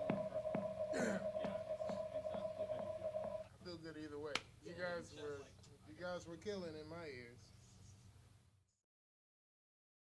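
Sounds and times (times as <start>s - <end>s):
people talking: 0.0s - 3.1s.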